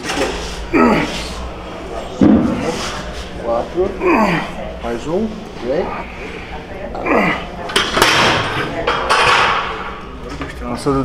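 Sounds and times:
voices: 0.0s - 11.0s.

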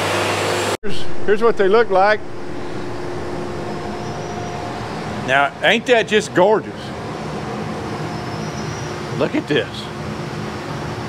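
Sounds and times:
machinery drone: 0.0s - 11.0s
faint low hum tone: 0.8s - 7.0s.

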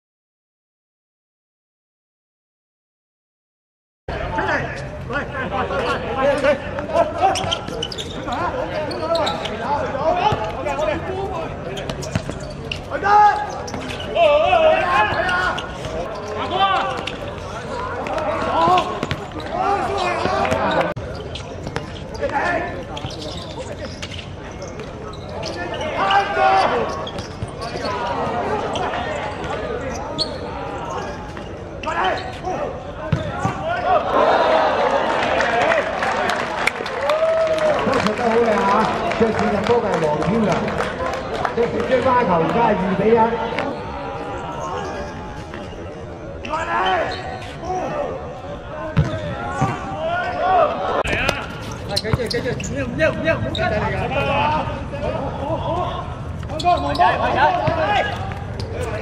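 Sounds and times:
people shouting and calling: 12.9s - 20.9s
ball kicked on hard court: 33.1s - 33.6s, 49.0s - 49.8s.

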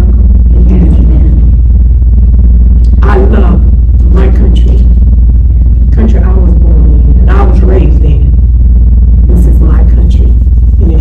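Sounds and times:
loud low hum: 0.0s - 11.0s.

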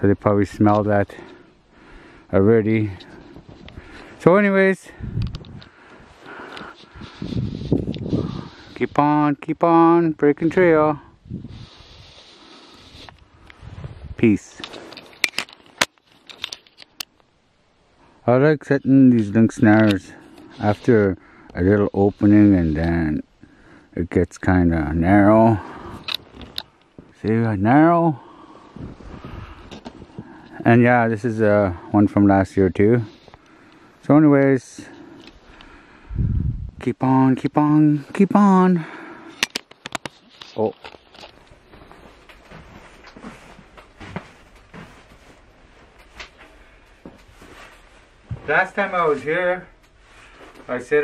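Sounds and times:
camera handling clicks and knocks: 14.9s - 17.1s, 39.4s - 40.2s.

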